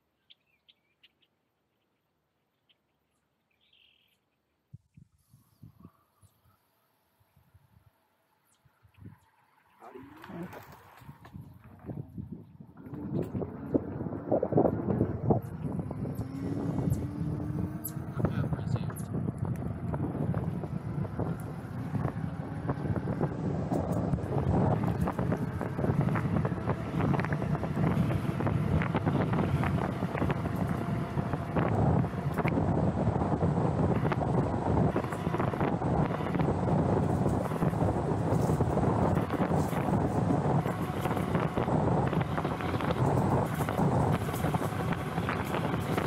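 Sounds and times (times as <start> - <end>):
wind rumbling on microphone: 4.7 - 6.6, 8.5 - 46.0.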